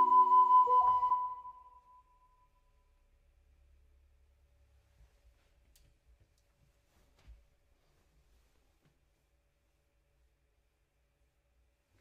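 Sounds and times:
ocarina note: 0.0s - 2.3s.

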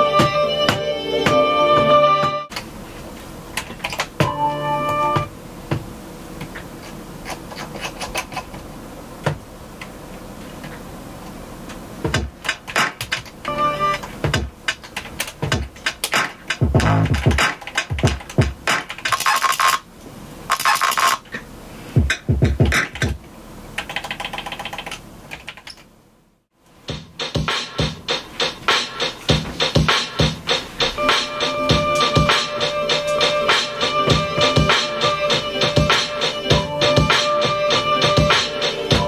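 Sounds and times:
kick and snare drum hits: 26.9s - 30.6s
stuttering pitched sample: 26.9s - 39.0s.

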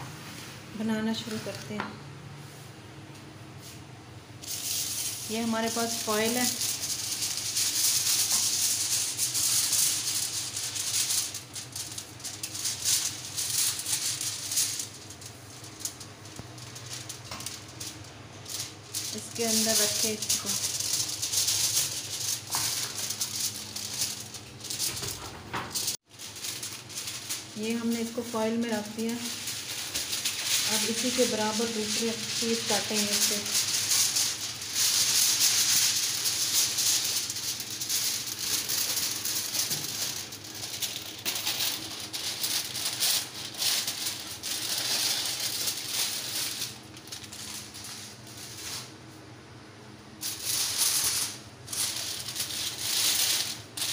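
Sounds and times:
kitchen foil crinkling: 4.4s - 49.2s, 50.2s - 53.9s.

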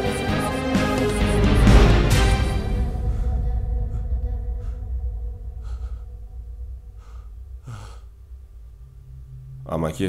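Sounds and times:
background music chords: 0.0s - 10.0s
man crying with gasping breaths: 2.7s - 8.3s.

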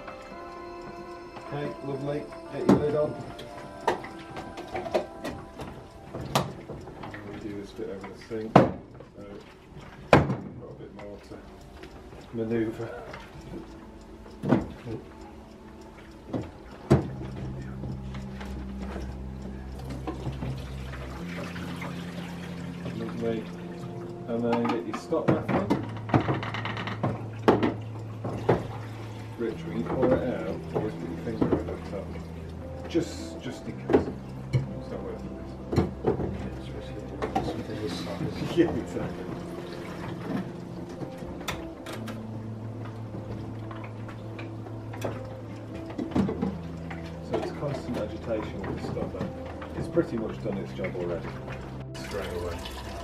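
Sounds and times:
low sustained chords music: 0.0s - 53.0s.

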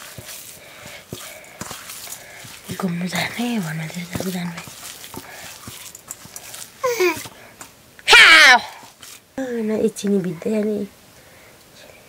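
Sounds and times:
hands kneading dough: 0.0s - 10.6s.

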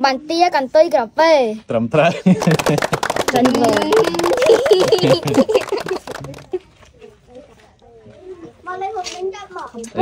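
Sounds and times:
child speaking: 0.0s - 1.6s, 7.3s - 10.0s.

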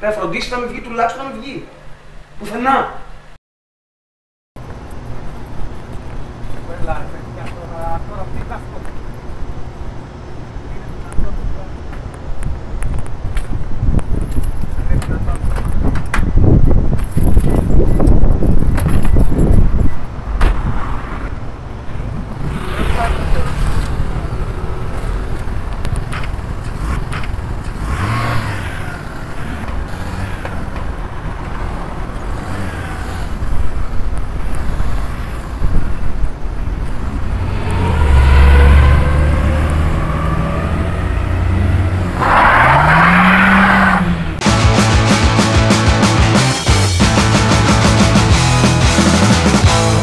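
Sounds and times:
voices: 22.0s - 25.4s.

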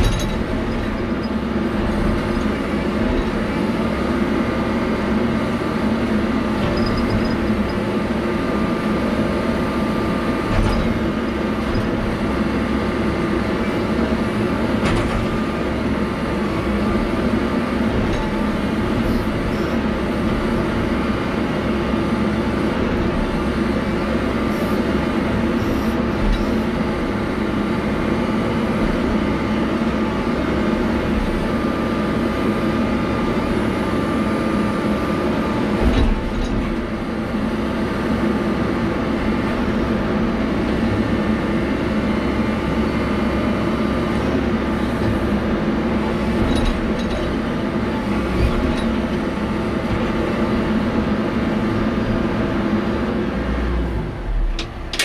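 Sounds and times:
diesel engine under load: 0.0s - 55.0s.

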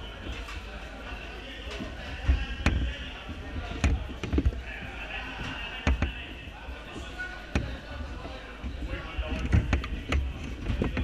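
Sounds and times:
murmur of voices: 0.0s - 11.0s
dull thumps of cars on track: 5.4s - 6.4s, 7.5s - 8.0s.

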